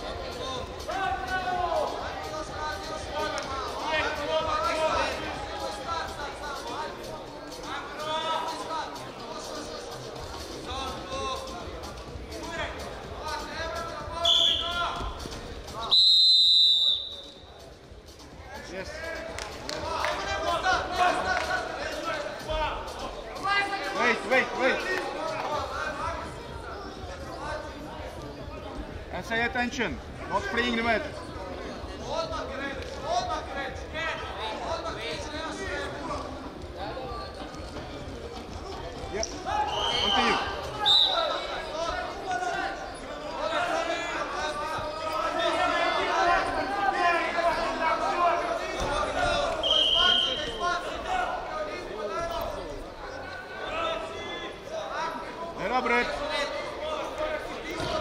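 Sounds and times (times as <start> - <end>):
referee's whistle blasts: 14.2 - 14.9, 15.9 - 17.5, 39.6 - 41.4, 49.6 - 50.6.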